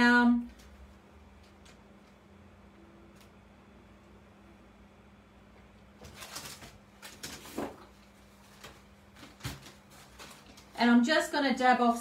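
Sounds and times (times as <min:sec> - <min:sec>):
faint steady hum: 0:00.0 - 0:12.0
paper rustling: 0:06.0 - 0:10.8.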